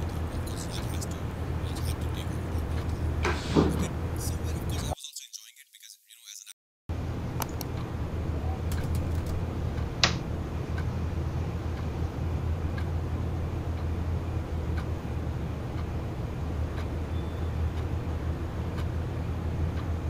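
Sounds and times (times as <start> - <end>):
keyboard and mouse clicks: 7.4 - 7.8, 8.7 - 9.4.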